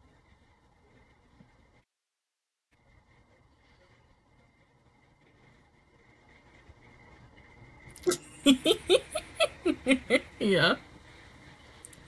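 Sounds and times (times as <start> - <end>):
low room hum: 0.0 - 1.9, 2.5 - 12.0.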